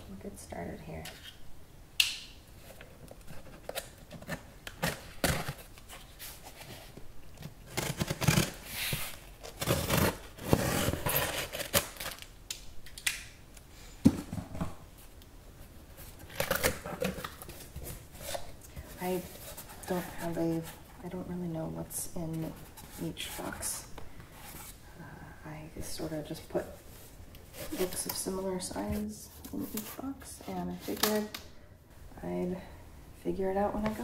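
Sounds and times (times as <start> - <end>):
packing tape tearing: 7.6 - 12.3, 16.2 - 18.5.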